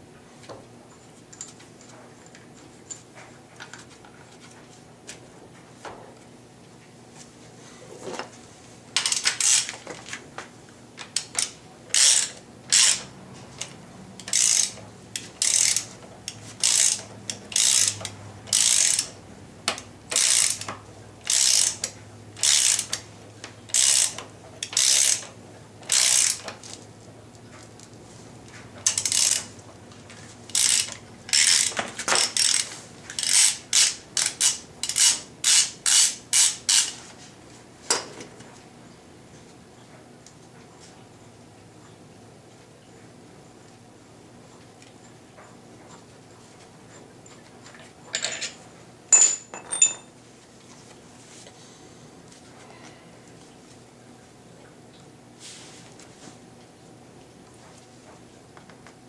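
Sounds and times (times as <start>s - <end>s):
hand ratchet clicking: 9.0s - 9.8s, 11.0s - 23.0s, 23.7s - 26.5s, 28.8s - 29.5s, 30.5s - 36.9s.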